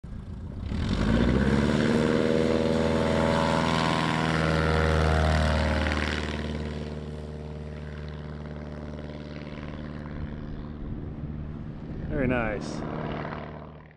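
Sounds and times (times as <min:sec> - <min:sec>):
propeller plane engine at full power: 0:00.0 - 0:13.9.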